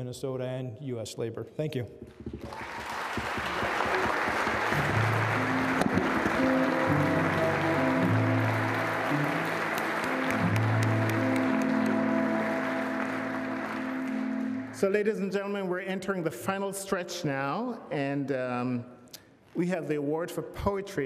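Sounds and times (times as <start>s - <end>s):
audience applauding: 2.3s - 15.1s.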